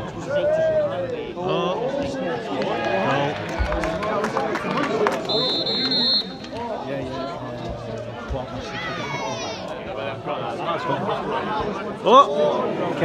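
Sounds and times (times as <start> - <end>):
spectators shouting and talking: 0.0 - 13.0
referee's whistle blast: 5.3 - 6.4.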